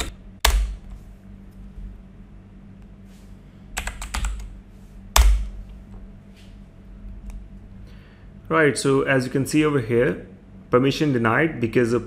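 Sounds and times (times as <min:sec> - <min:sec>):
computer keyboard keystrokes: 0:00.0 - 0:00.8, 0:03.8 - 0:04.5.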